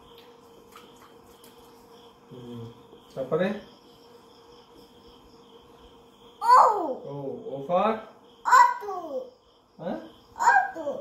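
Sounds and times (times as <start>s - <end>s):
faint steady hum: 0.0s - 11.0s
toddler babbling: 6.4s - 7.1s, 8.5s - 9.4s, 10.4s - 11.0s.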